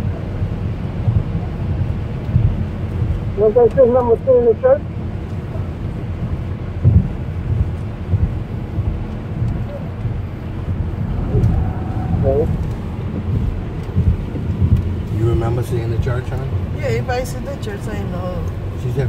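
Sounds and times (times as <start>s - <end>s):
car cabin road and engine rumble: 0.0s - 19.0s.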